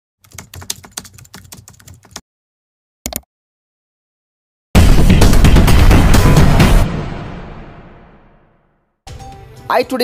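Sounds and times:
computer keyboard typing: 0.2 - 2.2.

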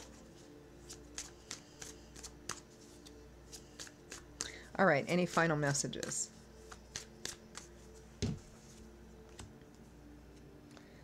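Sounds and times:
cards being shuffled: 0.0 - 4.6, 5.2 - 9.8.

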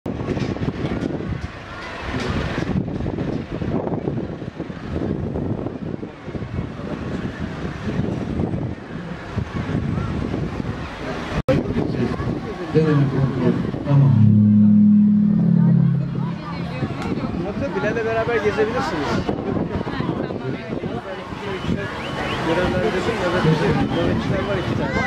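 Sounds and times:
wind rumbling on microphone: 0.1 - 21.8
indistinct voices: 12.6 - 17.8.

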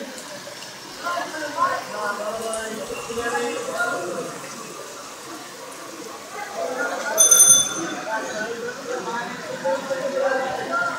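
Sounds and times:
rain falling on water: 0.0 - 10.9.

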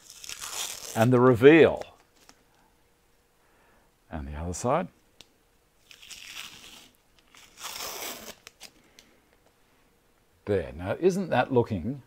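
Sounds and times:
masking tape peeling: 0.0 - 1.2, 5.8 - 8.8.

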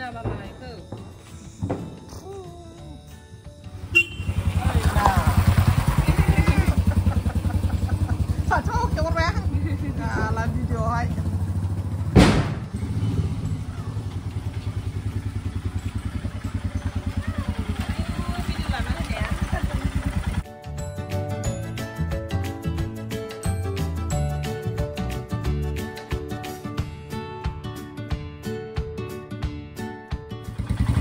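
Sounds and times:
motorcycle engine idling: 3.7 - 20.4, 30.5 - 31.0
sharp bang: 12.1 - 12.9.

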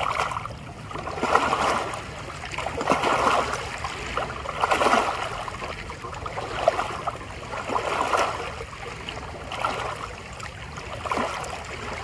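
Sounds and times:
waves lapping against boulders: 0.0 - 12.0.

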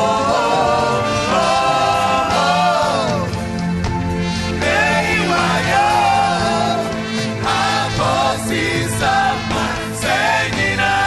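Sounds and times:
choir singing: 0.0 - 11.0
low accompaniment: 0.0 - 11.0.

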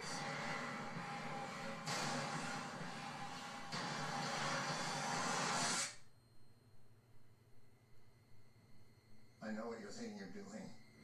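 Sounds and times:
dense rumbling film score: 0.0 - 5.8.

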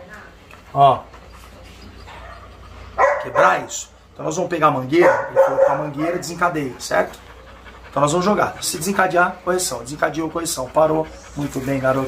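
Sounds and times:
faint dog sounds: 0.0 - 12.0.

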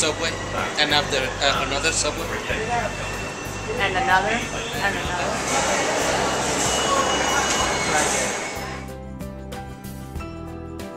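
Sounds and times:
people's voices: 0.0 - 8.8
subway station ambience: 0.0 - 8.9.

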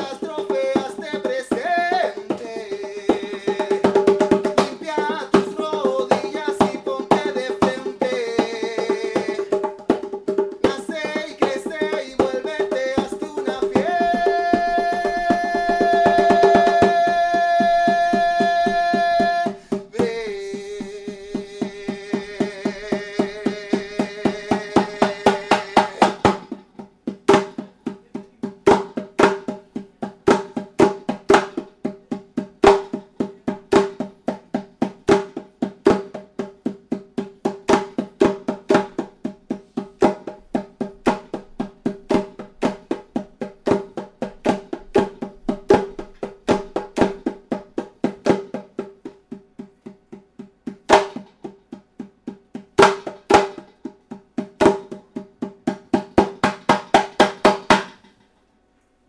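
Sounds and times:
hand drum struck by hand: 0.0 - 58.2.

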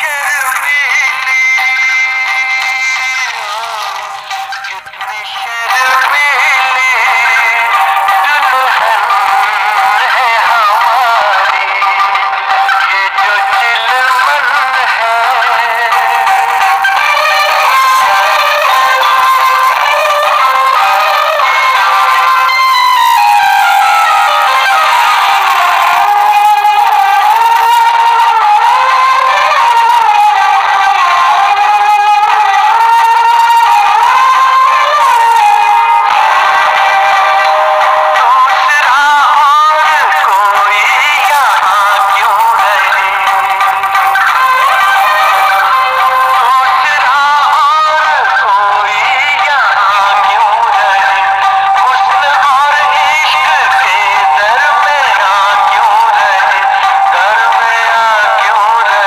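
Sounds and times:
film song with sung melody: 0.0 - 59.0.

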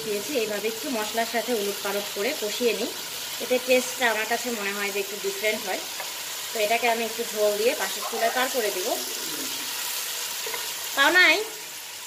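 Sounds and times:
fish sizzling in a pot: 0.0 - 12.0.

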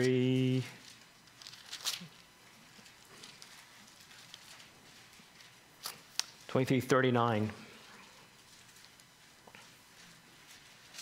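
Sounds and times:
paper pages rustling: 0.8 - 6.5, 8.3 - 11.0.

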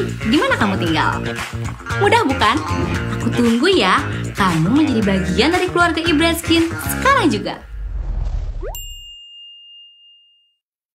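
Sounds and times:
low background music: 0.0 - 7.6
bright chime ding: 8.7 - 10.6.

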